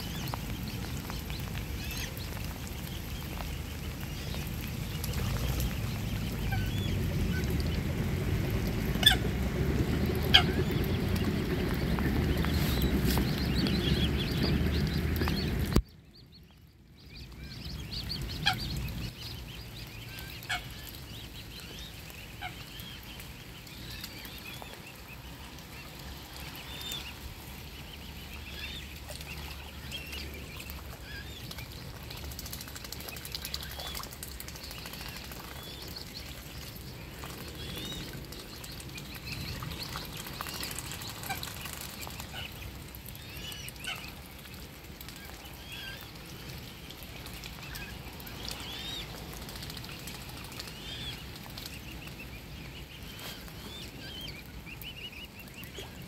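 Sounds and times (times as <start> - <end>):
cygnets peeping: 0.0 - 56.0.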